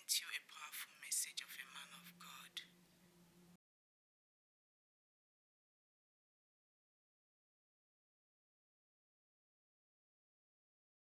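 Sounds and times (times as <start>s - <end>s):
woman whispering: 0.0s - 2.7s
low steady hum: 0.0s - 3.6s.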